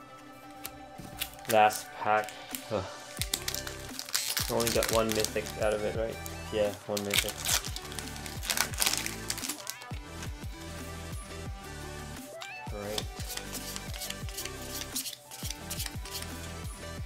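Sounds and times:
background music with steady beat: 0.0s - 17.0s.

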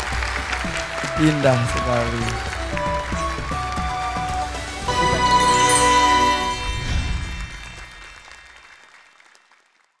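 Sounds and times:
faint applause: 0.0s - 5.3s, 7.2s - 10.0s.

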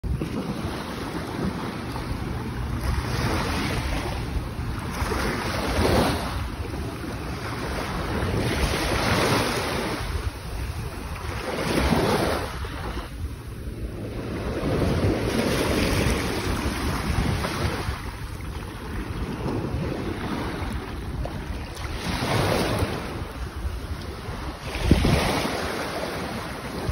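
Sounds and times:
waves rushing: 0.0s - 26.9s
wind rumbling on microphone: 0.0s - 26.9s.

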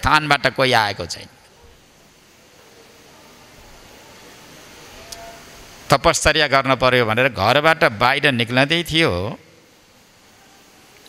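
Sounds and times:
man speaking: 0.0s - 1.4s, 5.9s - 9.4s
faint background noise: 0.0s - 11.0s.

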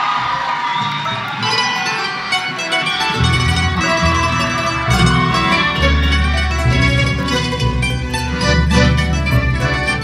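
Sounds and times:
audience cheering: 0.0s - 8.7s
guitars and mandolins playing: 1.3s - 10.0s.

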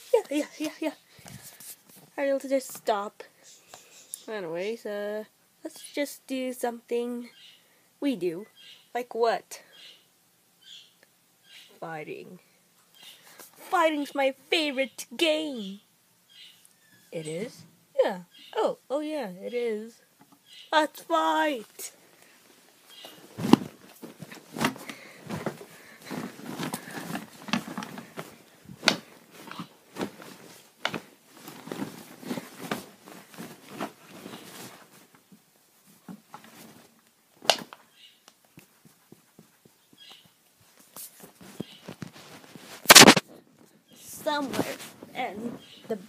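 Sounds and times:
fabric rustling: 22.0s - 37.0s, 40.6s - 46.0s
plush toys thumping: 23.3s - 34.0s.

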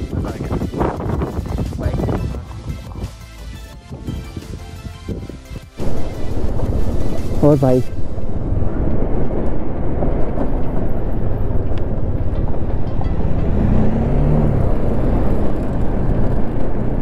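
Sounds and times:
motorcycle engine and wind: 0.0s - 17.0s.

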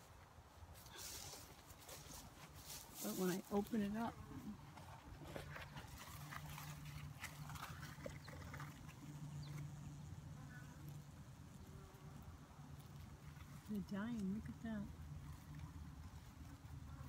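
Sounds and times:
honeybees buzzing: 1.7s - 17.0s.

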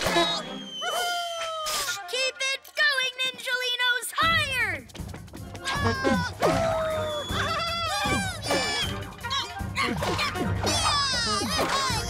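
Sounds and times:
background music: 0.0s - 12.0s
high-pitched cartoon vocalizations: 5.6s - 12.0s.

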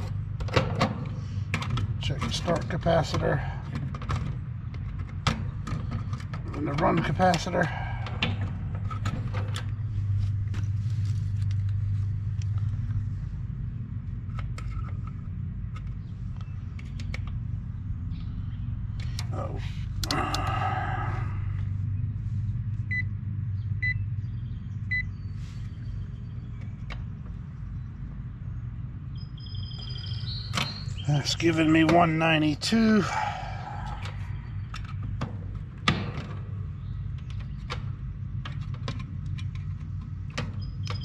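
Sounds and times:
steady low hum: 0.0s - 41.0s.

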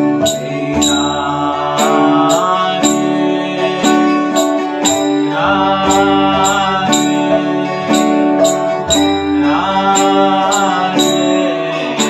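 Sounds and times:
percussion strokes: 0.0s - 12.0s
person chanting: 0.3s - 4.1s, 4.7s - 7.9s, 9.4s - 12.0s.

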